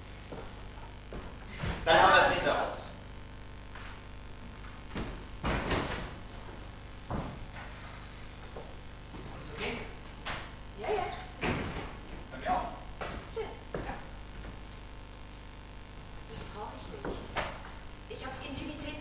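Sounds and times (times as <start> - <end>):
knocks and thumps on stage: 4.9 - 6.2, 11.4 - 12.3.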